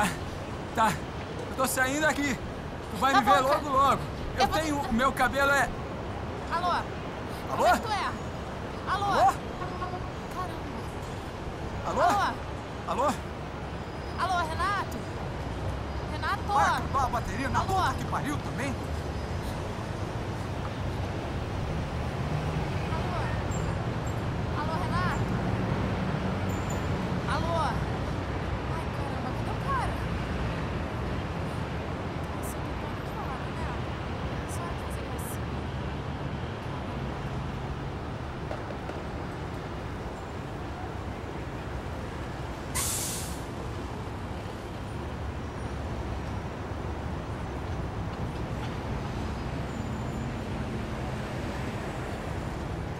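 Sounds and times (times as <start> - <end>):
low rumble of traffic: 0.0 - 52.9
air brakes hissing: 42.7 - 43.6.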